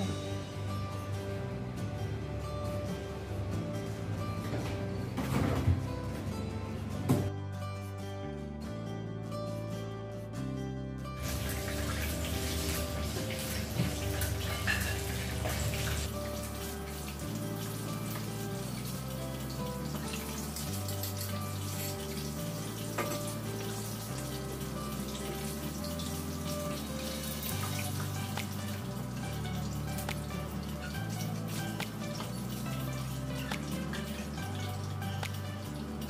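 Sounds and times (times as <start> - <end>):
background music with low bass: 0.0 - 36.0
chicken frying in oil: 11.2 - 36.0.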